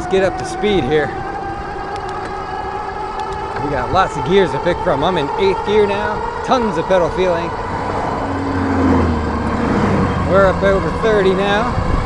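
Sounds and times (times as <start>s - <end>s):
electric motor whine: 0.0s - 12.0s
wind and road noise: 0.0s - 12.0s.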